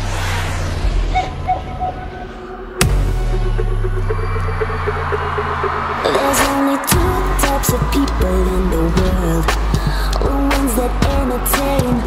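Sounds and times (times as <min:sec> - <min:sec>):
jet fly-by whoosh: 0:00.0 - 0:04.5
low rumble: 0:00.0 - 0:06.4.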